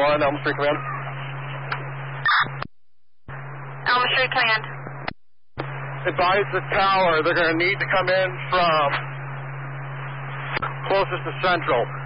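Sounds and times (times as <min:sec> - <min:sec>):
man talking over radio: 0:00.0 - 0:01.0, 0:06.0 - 0:09.1, 0:10.6 - 0:12.0
radio hiss: 0:00.0 - 0:02.7, 0:03.3 - 0:12.0
low hum: 0:00.0 - 0:12.0.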